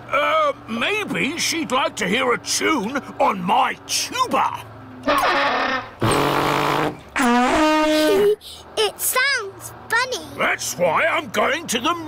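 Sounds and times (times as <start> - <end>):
tuba blasts: 5.1 - 7.7.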